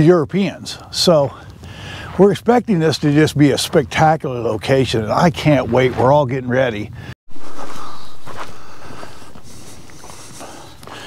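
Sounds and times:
footsteps crunching on stony track: 7.3s - 11.0s.

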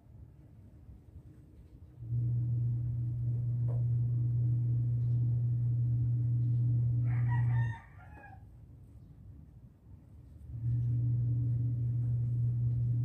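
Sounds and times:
loud low hum: 2.0s - 7.5s, 10.4s - 13.0s
rooster crowing: 6.9s - 8.5s.

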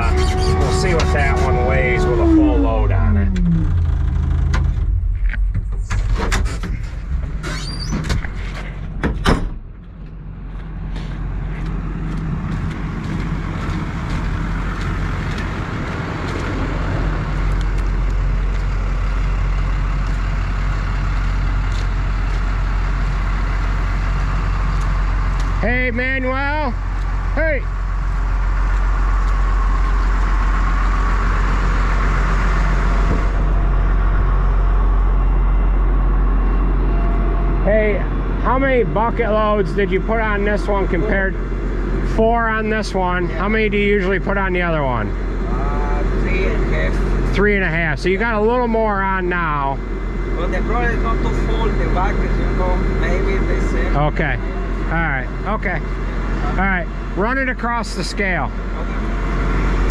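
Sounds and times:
heavy machinery engines idling: 0.0s - 59.9s.

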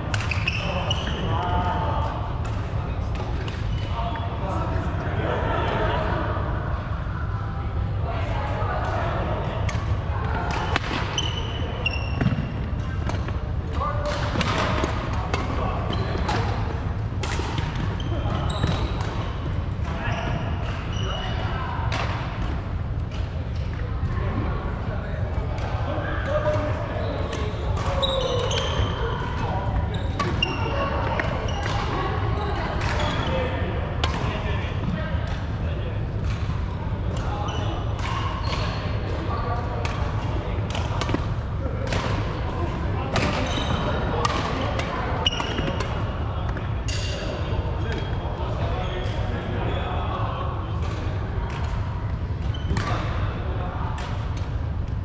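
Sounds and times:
players' voices: 0.0s - 55.0s.

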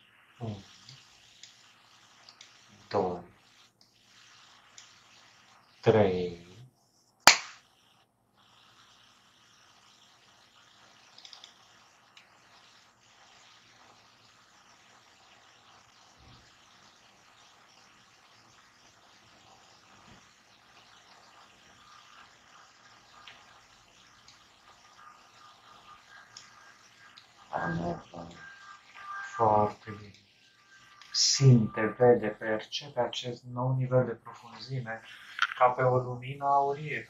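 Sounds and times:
faint steady hiss: 0.0s - 37.0s
person's voice: 0.4s - 0.7s, 2.9s - 3.3s, 27.5s - 28.4s, 29.3s - 30.2s, 31.0s - 37.0s.

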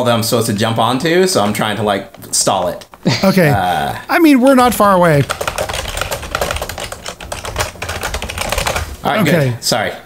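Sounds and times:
fast typing on computer keyboard: 4.6s - 9.2s.

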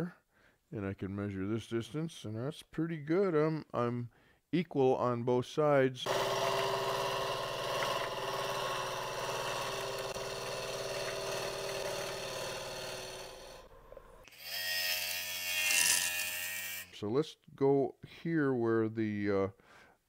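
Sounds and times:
wood lathe hum: 6.0s - 16.9s
gouge cutting wood shavings: 6.1s - 13.7s.

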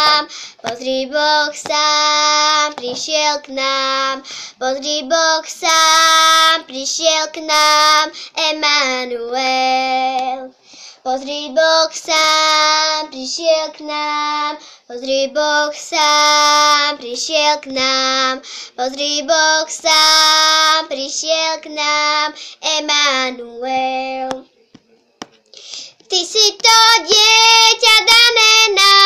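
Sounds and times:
girl singing unaccompanied: 0.0s - 24.5s, 25.9s - 29.0s.

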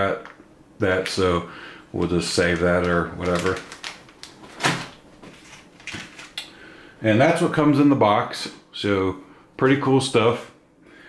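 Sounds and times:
packaging handling clicks: 2.5s - 5.0s.

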